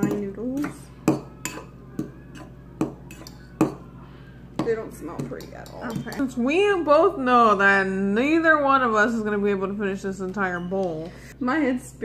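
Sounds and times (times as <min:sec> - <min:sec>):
fork clinking against ceramic bowl: 0:00.0 - 0:03.9, 0:04.6 - 0:06.4.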